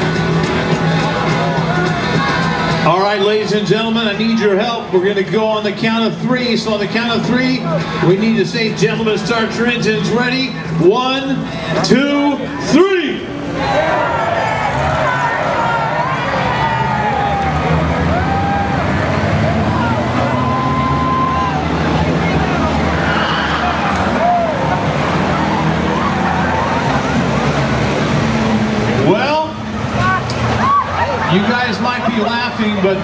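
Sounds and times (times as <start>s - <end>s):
crowd cheering and shouting: 0.0s - 33.0s
race car engines pulling away: 0.0s - 33.0s.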